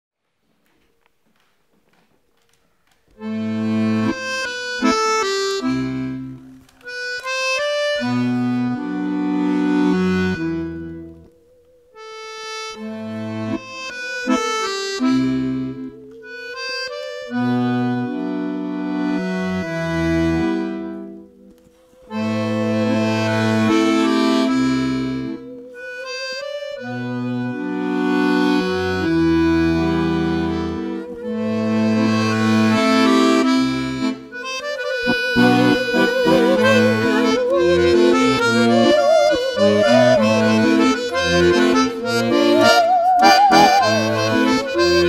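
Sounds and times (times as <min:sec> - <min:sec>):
button accordion playing: 0:03.2 - 0:45.0
bowed musical saw: 0:22.1 - 0:45.0.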